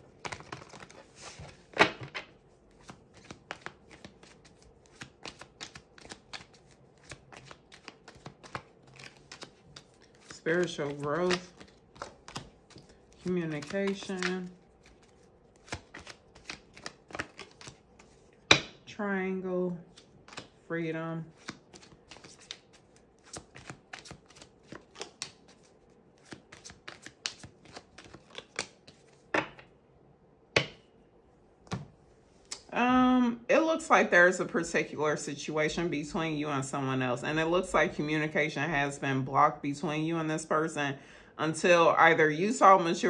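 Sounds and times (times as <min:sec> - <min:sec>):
cards being shuffled: 0:00.2 - 0:18.3, 0:19.9 - 0:20.6, 0:21.3 - 0:29.7.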